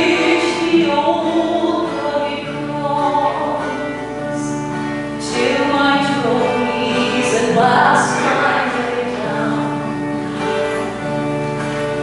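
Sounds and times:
person singing: 0.0 - 10.1
strummed acoustic guitar: 0.0 - 12.0.

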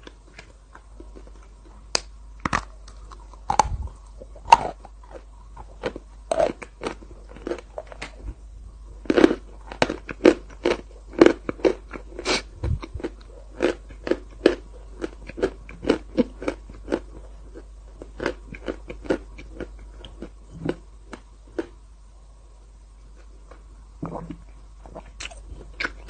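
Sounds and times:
wet mouth eating sounds: 24.0 - 26.0.

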